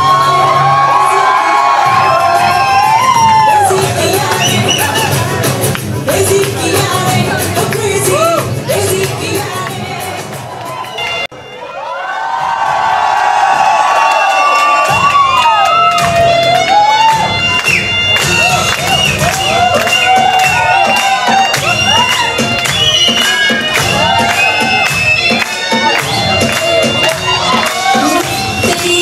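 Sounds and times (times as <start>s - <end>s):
crowd cheering: 0.0s - 5.6s, 9.6s - 29.0s
dance music with bending lead: 0.0s - 11.3s, 14.8s - 29.0s.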